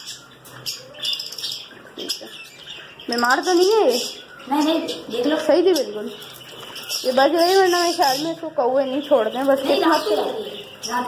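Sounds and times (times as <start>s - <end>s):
cage birds chirping: 0.0s - 11.0s.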